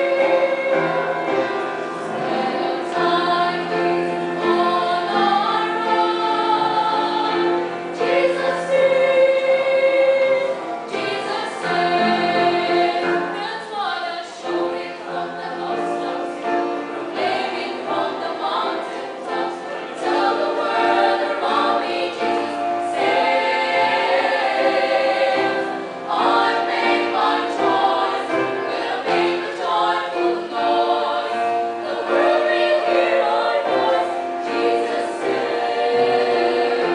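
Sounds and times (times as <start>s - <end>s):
women's choir singing a hymn: 0.0s - 36.9s.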